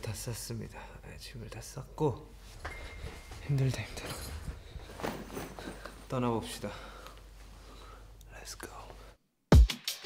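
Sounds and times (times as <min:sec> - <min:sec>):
man whispering: 0:03.4 - 0:04.6, 0:08.2 - 0:09.2.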